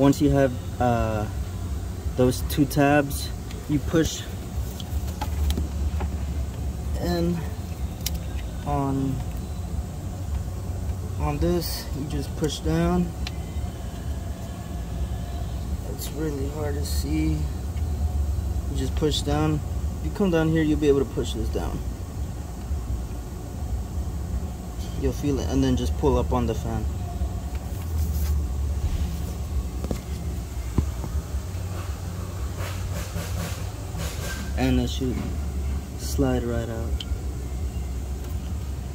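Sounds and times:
low background rumble: 0:00.0 - 0:38.9.

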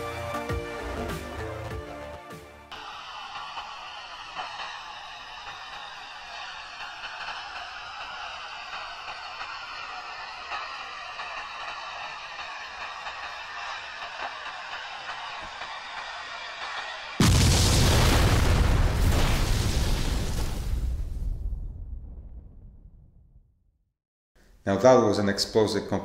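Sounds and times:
burning fuse sizzling: 0:02.7 - 0:20.8.

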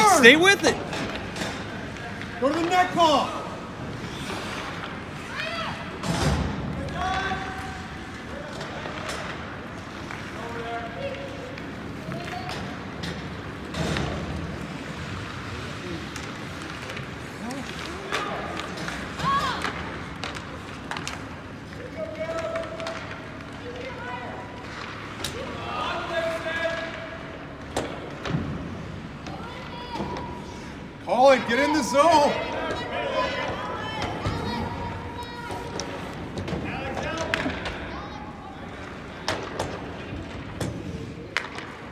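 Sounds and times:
people shouting and calling: 0:00.0 - 0:00.8, 0:29.2 - 0:38.9.

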